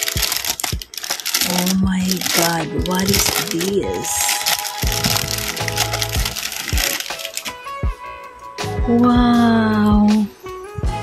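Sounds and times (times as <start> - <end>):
plastic bag crinkling: 0.0 - 7.9
background music with beat: 4.3 - 11.0.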